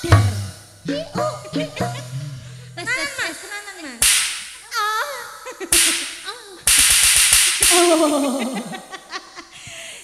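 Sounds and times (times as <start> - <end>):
sharp percussive cracks with hiss: 4.0 - 4.6, 5.7 - 8.1.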